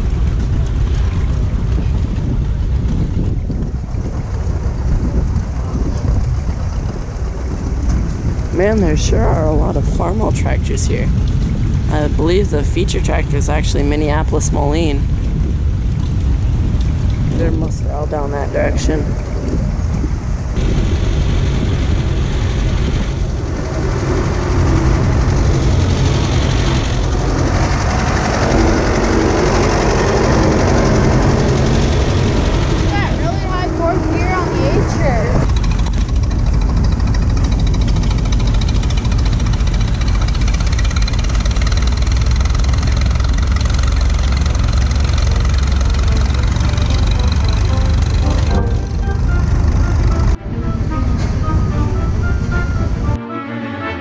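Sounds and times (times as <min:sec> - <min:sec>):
tractor engine humming: 0:00.0 - 0:53.2.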